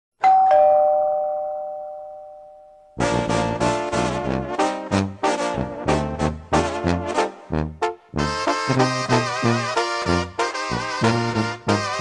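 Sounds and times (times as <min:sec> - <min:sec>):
two-note doorbell chime: 0:00.2 - 0:03.0
brass band music: 0:03.0 - 0:12.0.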